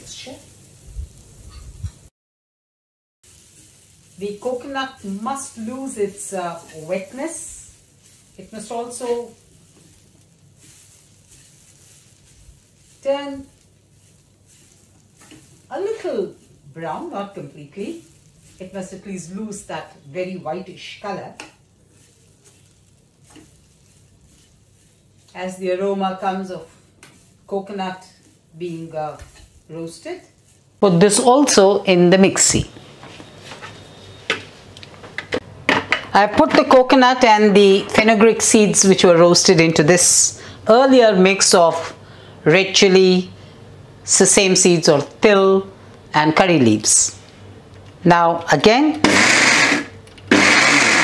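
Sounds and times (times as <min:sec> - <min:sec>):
coconut sizzling in a pan: 0:00.0 - 0:02.1, 0:03.2 - 0:51.0.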